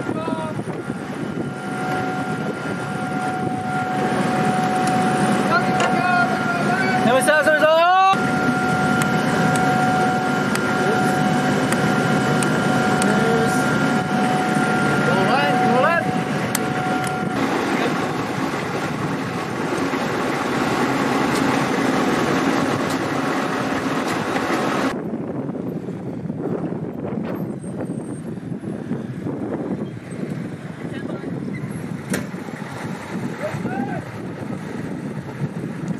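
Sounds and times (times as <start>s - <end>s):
wind on microphone: 0.0s - 7.5s, 8.2s - 35.9s
rising squeal: 0.0s - 25.0s
machine running with high whine: 0.0s - 26.2s.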